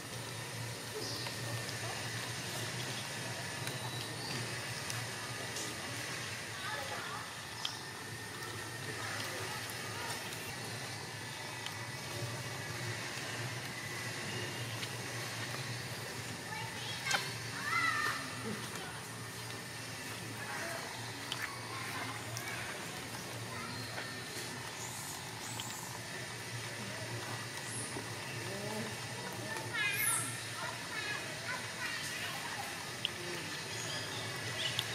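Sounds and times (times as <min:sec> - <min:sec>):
faint distant voices: 0:00.0 - 0:34.9.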